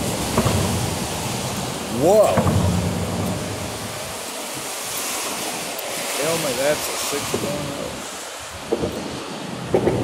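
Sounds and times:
wind blowing on microphone: 0:00.0 - 0:10.0.

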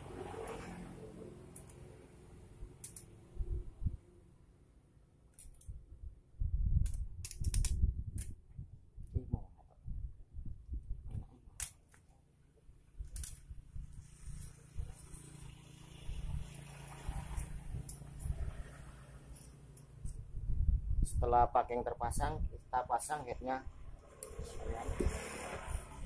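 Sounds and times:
sharp metal clicks: 0:01.5 - 0:01.9, 0:02.8 - 0:03.2, 0:05.3 - 0:05.8.

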